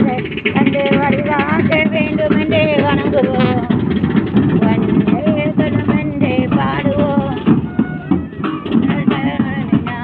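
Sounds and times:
dense low rumble: 0:00.0 - 0:10.0.

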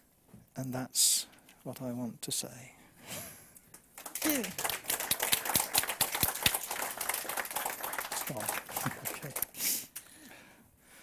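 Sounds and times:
audience applauding: 0:04.0 - 0:09.6
person speaking: 0:08.1 - 0:09.6.

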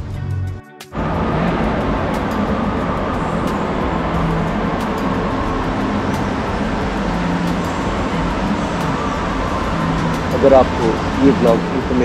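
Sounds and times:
low hum: 0:01.0 - 0:12.0.

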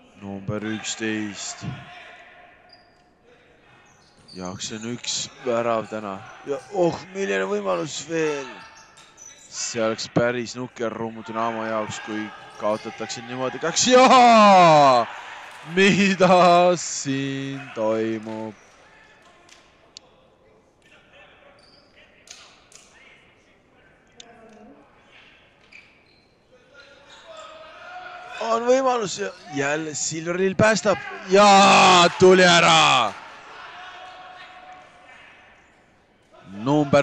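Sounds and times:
distant players calling: 0:11.1 - 0:18.6, 0:27.1 - 0:34.6.

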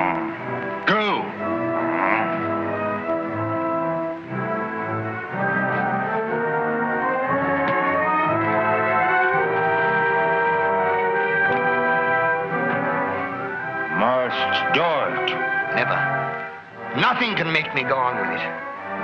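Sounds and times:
orchestral brass chords: 0:00.0 - 0:19.0.

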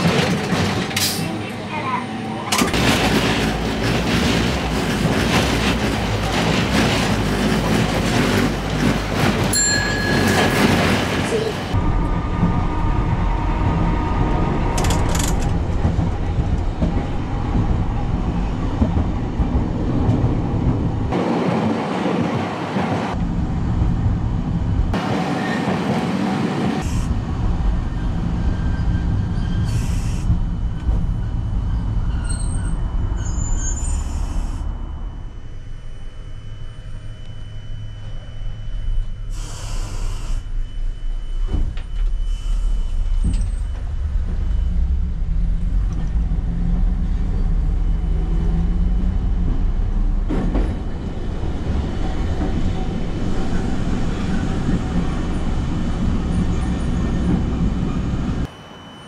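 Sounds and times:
streetcar wheels rumbling on rails: 0:00.0 - 0:59.0.

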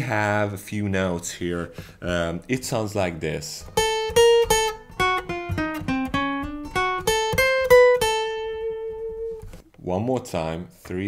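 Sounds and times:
acoustic guitar melody: 0:03.6 - 0:09.7.

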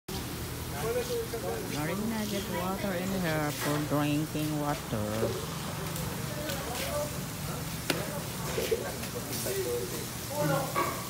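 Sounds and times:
faint background voices: 0:04.6 - 0:11.0.

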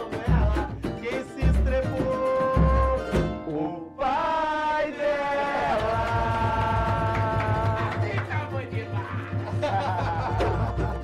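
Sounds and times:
percussion: 0:00.0 - 0:03.6, 0:05.6 - 0:11.0
live band playing: 0:00.0 - 0:03.7.

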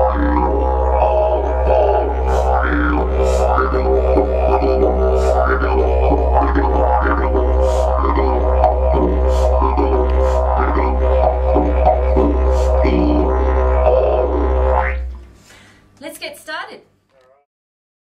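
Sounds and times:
didgeridoo drone: 0:00.0 - 0:15.2.

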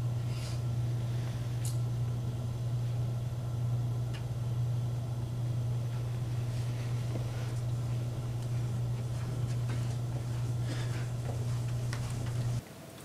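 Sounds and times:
steady low hum: 0:00.0 - 0:12.7.

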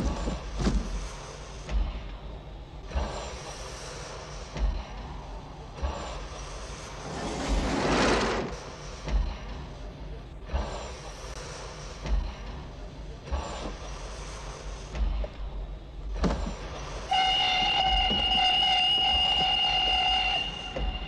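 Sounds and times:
steam train hissing: 0:00.0 - 0:15.3, 0:16.2 - 0:21.0
steam locomotive whistle: 0:17.1 - 0:21.0.

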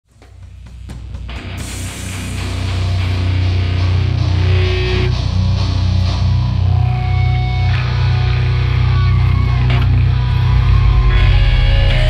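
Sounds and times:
heavy bass and drum hits: 0:00.2 - 0:12.0
heavy rock band playing: 0:00.4 - 0:12.0.

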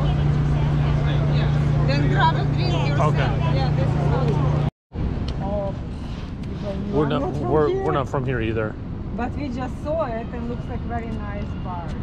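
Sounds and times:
people talking: 0:06.6 - 0:12.0.

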